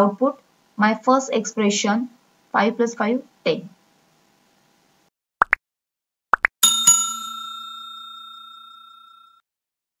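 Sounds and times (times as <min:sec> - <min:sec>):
notification bell ding: 0:06.6 - 0:09.4.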